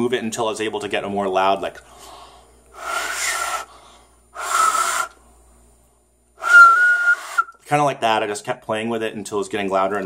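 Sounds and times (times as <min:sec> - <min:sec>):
breathy finger whistle: 0:02.7 - 0:03.7, 0:04.4 - 0:05.2, 0:06.4 - 0:07.6.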